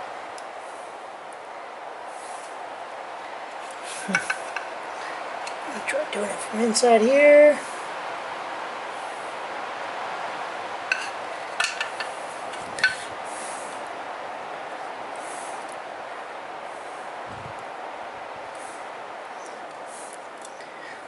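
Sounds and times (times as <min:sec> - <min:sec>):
steady background hiss: 0:00.0 - 0:21.0.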